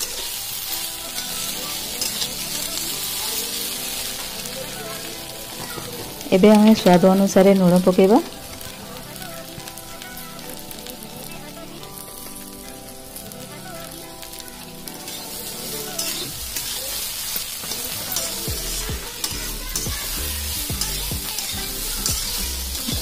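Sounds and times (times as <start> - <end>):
vegetables sizzling in oil: 0.0 - 23.0.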